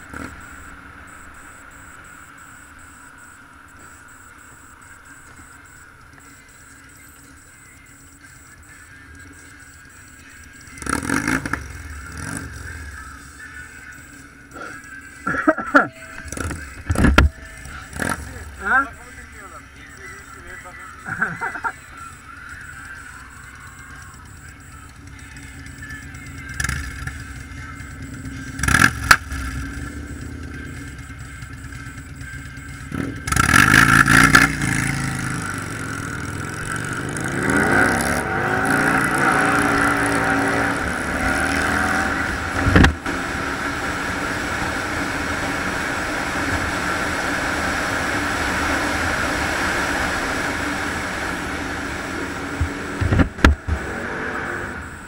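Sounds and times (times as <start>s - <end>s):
wind and road noise: 0.0s - 6.6s, 33.0s - 55.0s
motorcycle engine revving: 0.0s - 7.6s, 8.2s - 55.0s.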